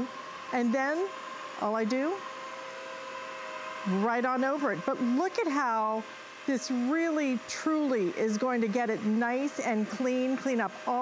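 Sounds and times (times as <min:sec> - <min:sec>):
floor cleaner motor whine: 0:00.0 - 0:11.0.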